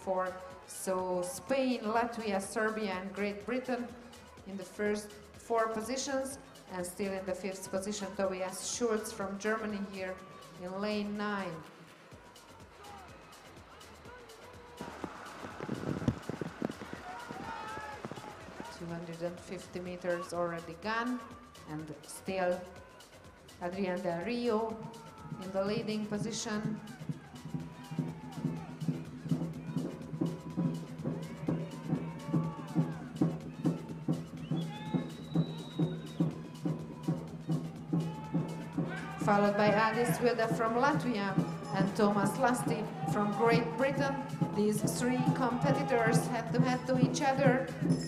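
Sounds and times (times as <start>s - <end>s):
background music: 0.0s - 48.0s
steady drum beat: 12.5s - 21.6s, 24.7s - 48.0s.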